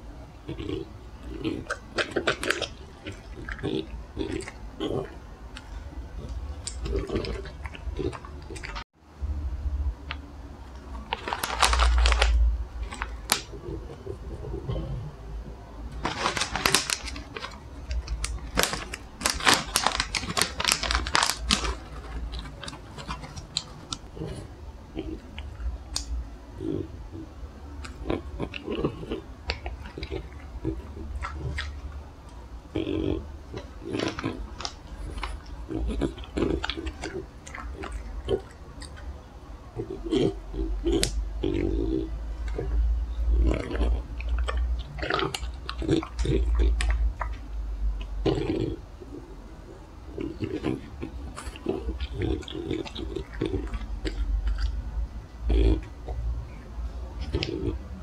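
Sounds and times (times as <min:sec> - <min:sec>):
plastic packet crinkling: 0:11.0 - 0:13.8, 0:15.9 - 0:24.3, 0:33.9 - 0:39.0
dog chewing a treat: 0:15.9 - 0:26.8, 0:33.0 - 0:49.2, 0:50.1 - 0:54.9.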